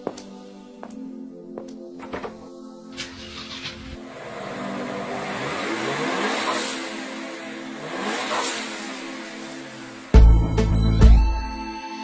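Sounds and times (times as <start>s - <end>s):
car engine revving: 2.9s - 10.6s.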